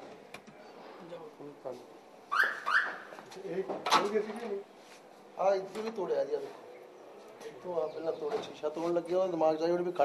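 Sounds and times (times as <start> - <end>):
door squeaks: 2.3 - 3.1.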